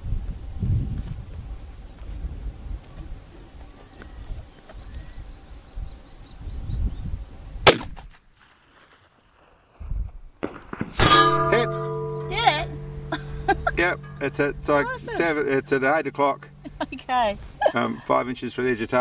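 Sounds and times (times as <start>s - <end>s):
low wind rumble: 0.0s - 7.7s, 9.7s - 19.0s
rifle shot crack: 7.6s - 9.2s
sustained ringing tones: 11.0s - 19.0s.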